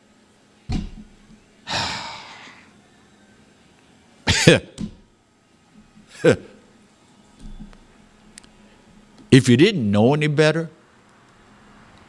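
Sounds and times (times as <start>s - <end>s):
man sighing: 1.7s - 2.7s
man chuckling: 4.3s - 4.7s.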